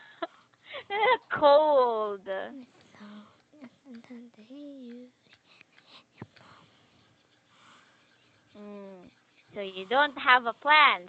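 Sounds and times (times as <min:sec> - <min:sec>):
faint breathy whispering: 0:04.0 - 0:10.3.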